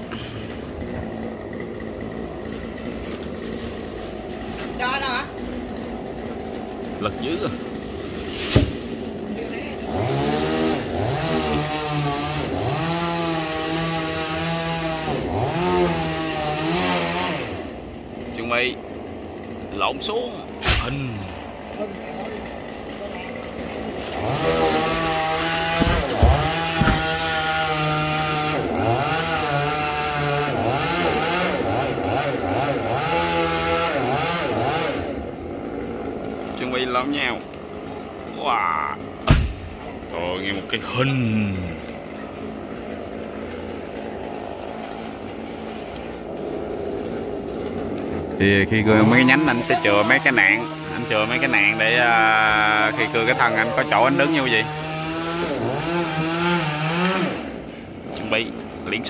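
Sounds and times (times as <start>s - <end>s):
chainsaw cutting tree trunk: 0.0s - 59.0s.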